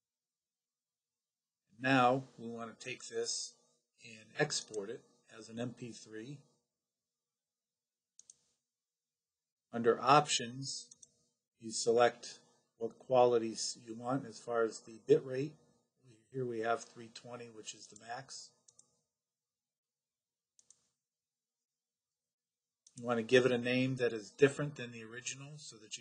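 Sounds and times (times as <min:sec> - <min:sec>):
computer mouse clicks: 0:08.2 - 0:08.5, 0:20.6 - 0:20.9.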